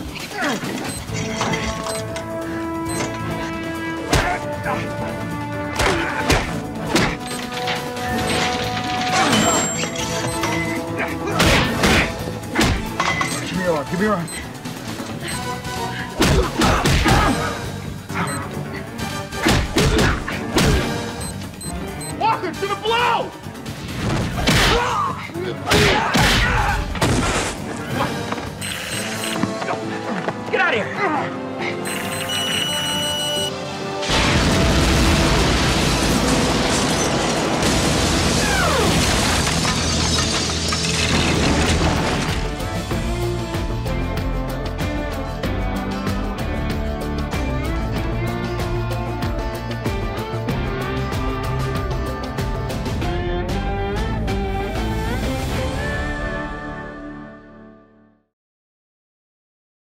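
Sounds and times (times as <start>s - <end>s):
dramatic action soundtrack music: 0.0s - 57.4s
brief high beep: 31.8s - 33.5s
explosion roar: 34.0s - 39.8s.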